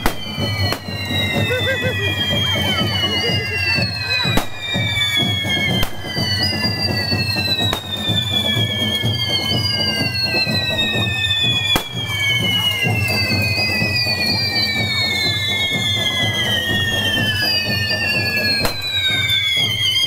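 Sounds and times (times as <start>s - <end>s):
firework bangs: 0.0s - 14.4s, 15.0s - 20.0s
firework whistles sliding down: 0.0s - 20.0s.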